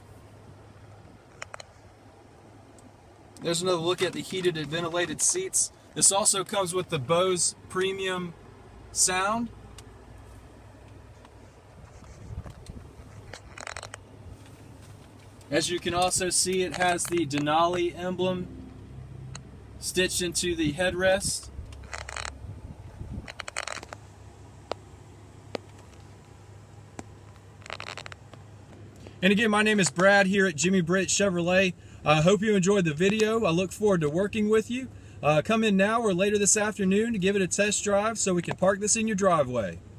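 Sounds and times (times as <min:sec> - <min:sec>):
low hum in truck cabin: 0:00.0 - 0:39.9
phone handling rustles and clicks: 0:01.2 - 0:01.9, 0:02.8 - 0:06.6, 0:10.8 - 0:17.9, 0:21.6 - 0:22.4, 0:23.2 - 0:24.9, 0:25.5 - 0:29.2.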